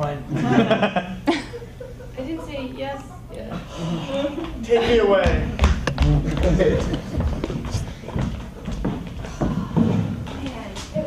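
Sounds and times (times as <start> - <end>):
audience laughing: 0.3 - 5.2
footsteps and thuds on stage: 5.2 - 11.0.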